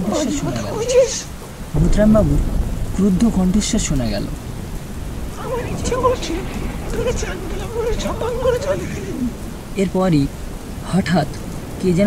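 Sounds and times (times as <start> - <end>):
person narrating: 0.0 - 4.4, 5.4 - 10.3
steady rain: 0.0 - 12.0
low thunder rumble: 0.5 - 12.0.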